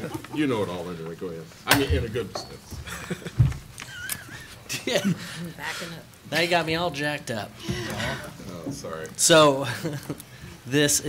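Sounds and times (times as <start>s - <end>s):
people laughing: 0.0s - 0.6s, 2.8s - 5.8s, 9.6s - 10.3s.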